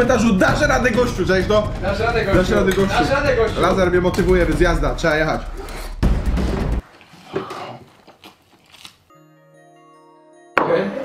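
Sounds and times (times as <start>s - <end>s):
chewing: 7.0s - 9.1s.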